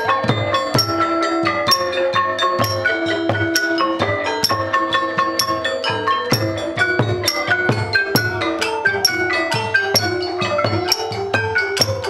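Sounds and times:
hand-struck barrel drum: 0.0s - 12.0s
wooden xylophone ringing notes: 0.0s - 12.0s.

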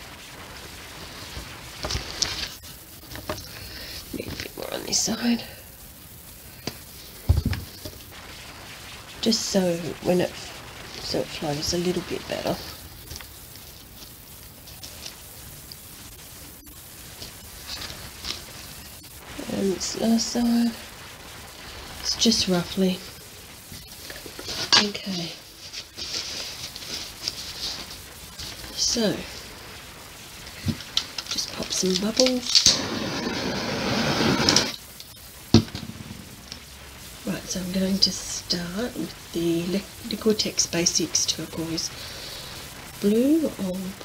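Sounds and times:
steady low hiss: 0.0s - 44.0s.

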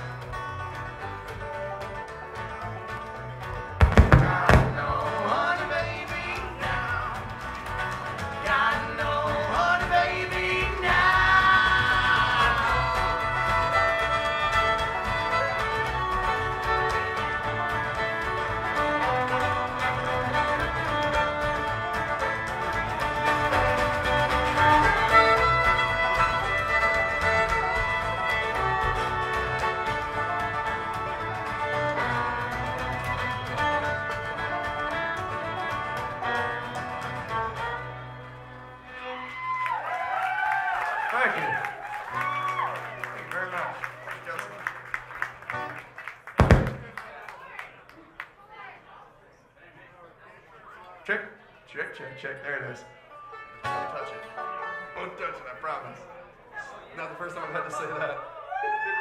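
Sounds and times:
bluegrass string band playing: 0.0s - 47.6s, 51.1s - 58.9s.

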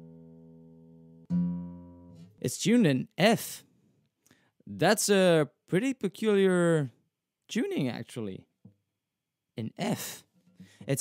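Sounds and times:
acoustic guitar note plucked: 0.0s - 2.4s.

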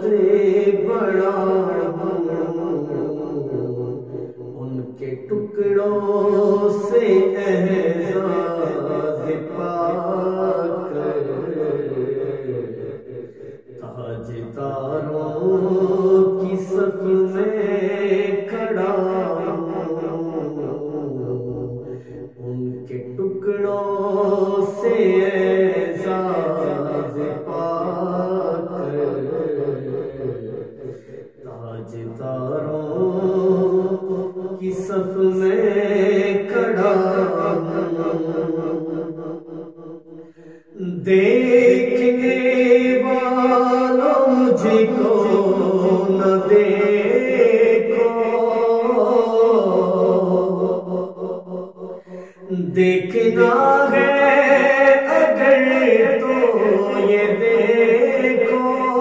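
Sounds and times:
man chanting: 0.0s - 59.0s.

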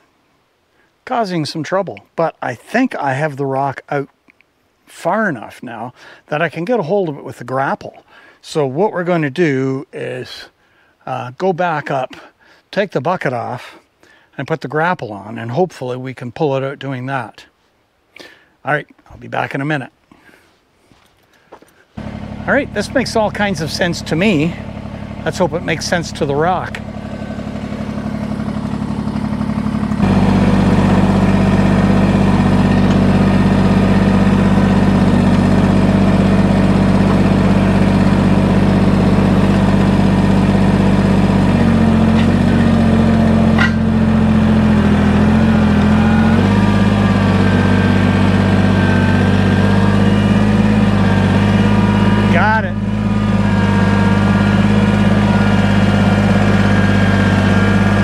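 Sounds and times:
tractor diesel engine running: 22.0s - 58.0s.

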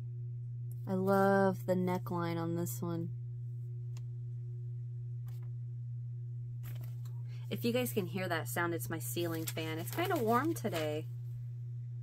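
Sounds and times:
ceiling fan humming: 0.0s - 12.0s.

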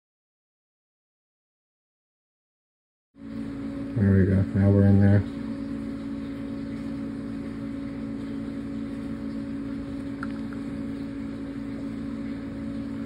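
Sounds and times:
low mechanical hum: 3.2s - 13.0s.

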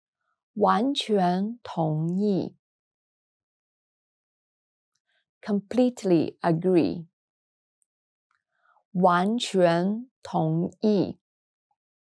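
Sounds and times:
woman speaking: 0.6s - 2.5s, 5.5s - 7.1s, 9.0s - 11.2s
faint in-breath: 8.4s - 8.8s.

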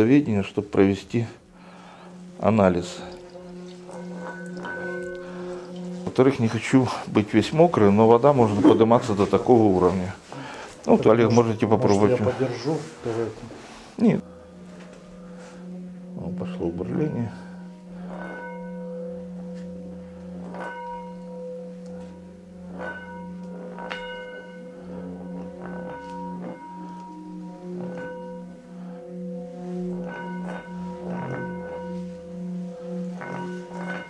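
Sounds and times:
singing bowl humming: 1.4s - 13.0s, 13.6s - 34.0s
water spraying and bubbling: 2.6s - 6.2s.

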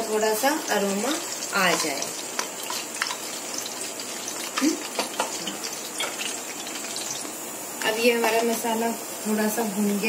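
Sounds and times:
spices sizzling in hot oil: 0.0s - 10.0s.

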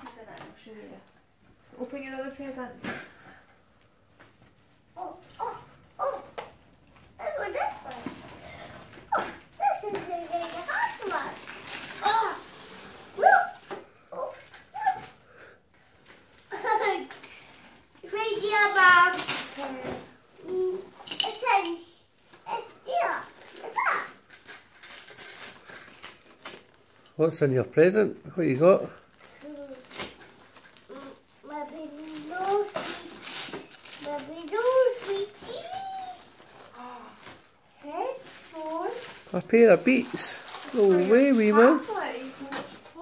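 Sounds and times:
wrapping paper rustling and tearing: 4.9s - 6.3s, 6.9s - 27.4s, 28.4s - 43.0s
young child talking: 7.2s - 8.2s, 9.1s - 11.4s, 12.0s - 12.4s, 18.0s - 21.9s, 22.5s - 24.2s, 30.9s - 33.1s, 34.0s - 37.1s.

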